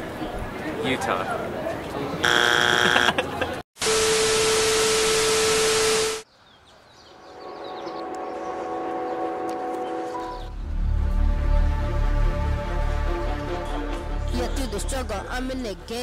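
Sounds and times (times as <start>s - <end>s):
buzzer-like tone: 2.2s - 3.2s, 3.8s - 6.2s
loud static-like hiss: 3.8s - 6.2s
soft sustained chord: 7.2s - 10.6s.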